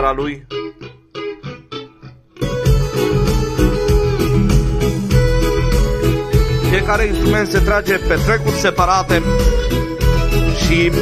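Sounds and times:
plucked guitar notes: 0:00.0 - 0:11.0
band playing steady beat: 0:02.4 - 0:11.0.

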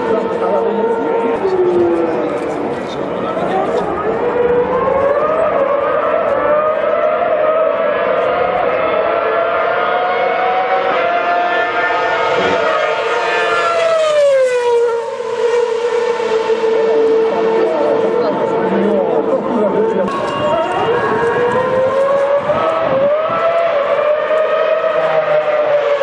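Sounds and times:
racing car engine screaming: 0:00.0 - 0:26.0.

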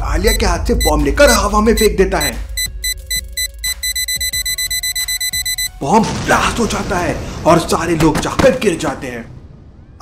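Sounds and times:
rapid high timer beeps: 0:00.2 - 0:05.8.

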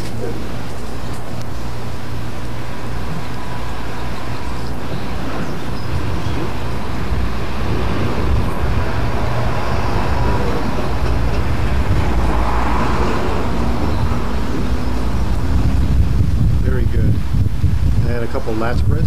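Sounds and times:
distant traffic: 0:00.0 - 0:19.0
low rumble on microphone: 0:00.0 - 0:19.0
wind: 0:00.0 - 0:19.0.

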